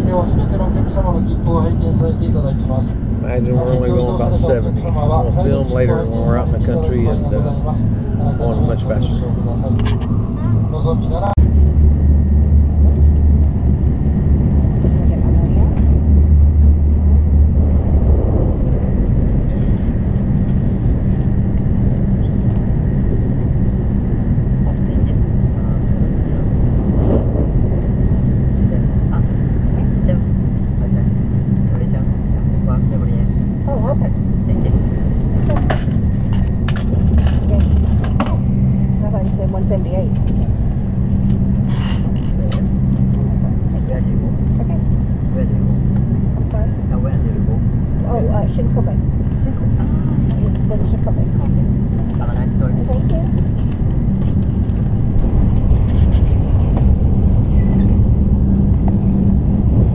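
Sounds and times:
quiet voices: 0.0 - 11.4
train rumble from inside car: 0.0 - 59.9.

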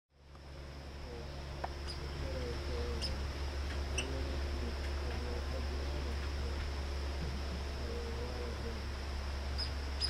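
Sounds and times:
low hum: 0.1 - 10.0
steady high drone: 0.2 - 10.0
squirrel chirping: 1.7 - 6.7, 9.4 - 10.0.

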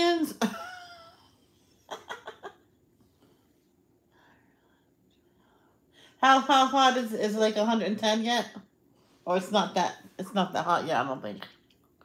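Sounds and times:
breathing: 3.2 - 6.2.

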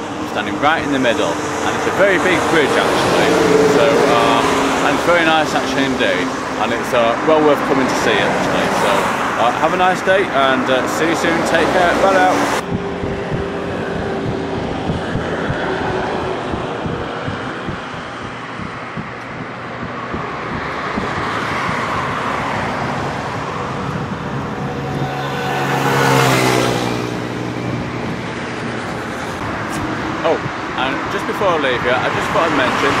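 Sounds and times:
road traffic: 0.0 - 33.0
vehicle passing close: 0.0 - 33.0.

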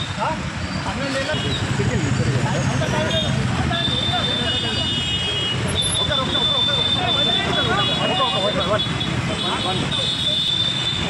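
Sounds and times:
many voices talking: 0.0 - 11.0
street traffic: 0.0 - 11.0.

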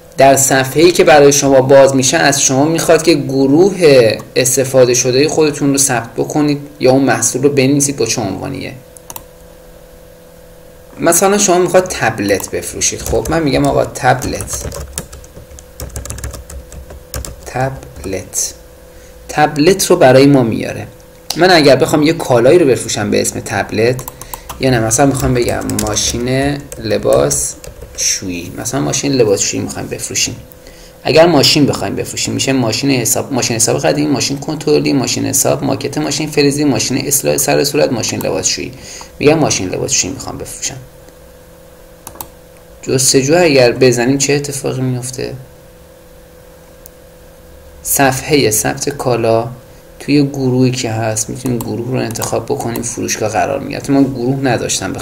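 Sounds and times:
faint steady hum: 0.0 - 55.0
typing on computer keyboard: 12.4 - 18.2, 24.0 - 28.0.

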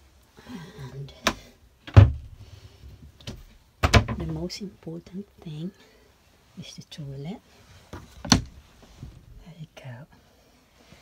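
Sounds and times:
cupboard door knocking shut: 1.9 - 2.4, 3.3 - 4.2.

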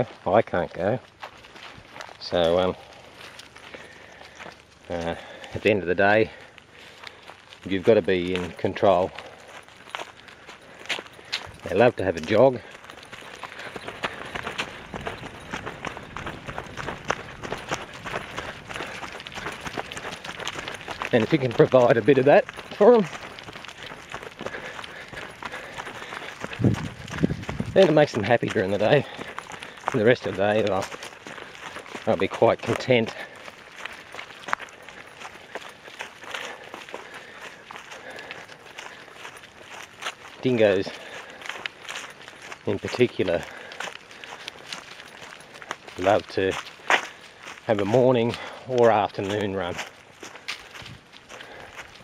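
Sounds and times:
running footsteps on leaves: 0.0 - 52.0.

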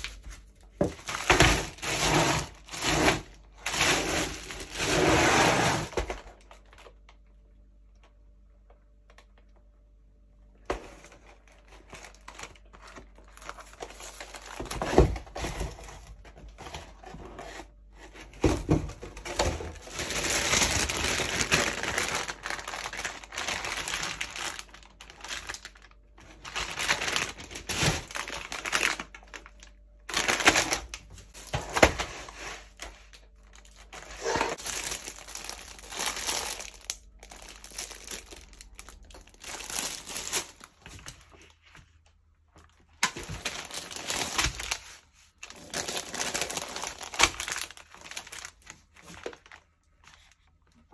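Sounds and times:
plastic punnet crinkling: 11.0 - 17.1, 18.9 - 50.9.

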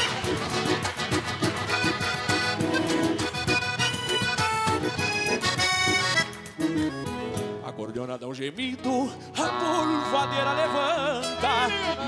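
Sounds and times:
piano accordion melody: 0.0 - 7.7, 9.4 - 12.0.

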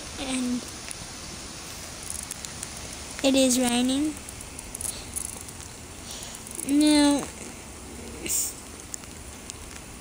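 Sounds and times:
rain hissing: 0.0 - 10.0.

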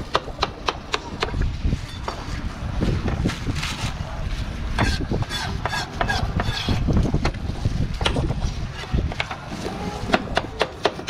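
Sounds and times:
wind rumbling on microphone: 0.0 - 10.9.

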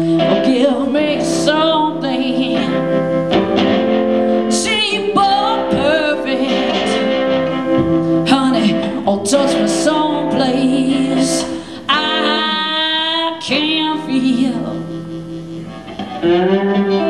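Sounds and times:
live blues-rock band playing: 0.0 - 17.0
woman singing with vibrato: 0.0 - 17.0.

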